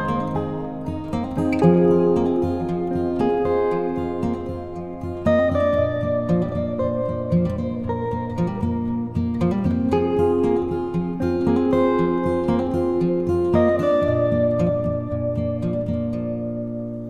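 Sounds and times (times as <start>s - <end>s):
plucked strings music: 0.0s - 17.0s.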